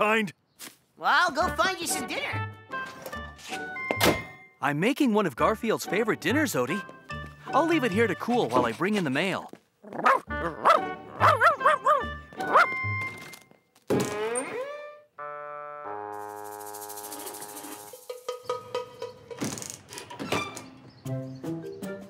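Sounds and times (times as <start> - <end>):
cartoon dog barking and yelping: 9.9 - 12.8
cartoon music chord and notes: 10.3 - 13.3, 14.4 - 18.0.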